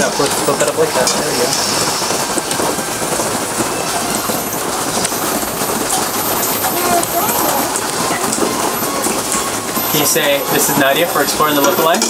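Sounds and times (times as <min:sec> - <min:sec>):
faint voices: 0:00.0 - 0:12.0
steady rain: 0:00.0 - 0:12.0.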